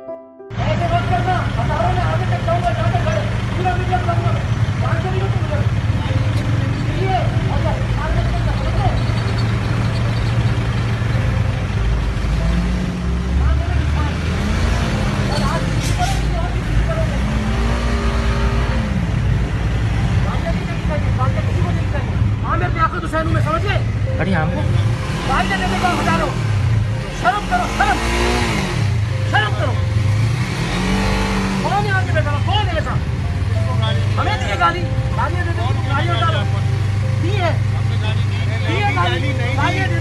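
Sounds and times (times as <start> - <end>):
people talking indistinctly: 0.5 - 12.0, 13.0 - 40.0
car engine hum: 0.5 - 40.0.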